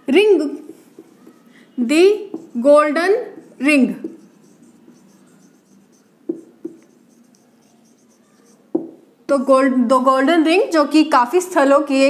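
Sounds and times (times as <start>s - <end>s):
marker pen writing on whiteboard: 0.6s - 9.0s.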